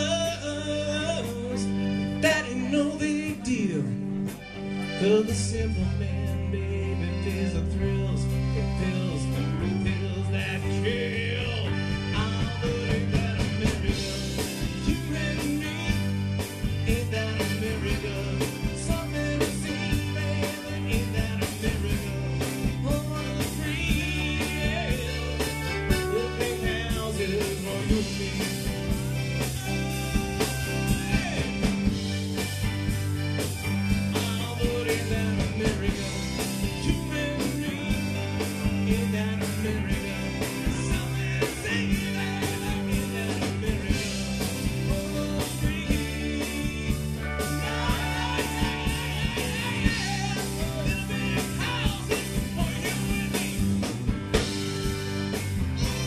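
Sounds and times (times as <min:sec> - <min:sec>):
electric guitar: 0:00.0 - 0:56.0
steady drum beat: 0:09.4 - 0:56.0.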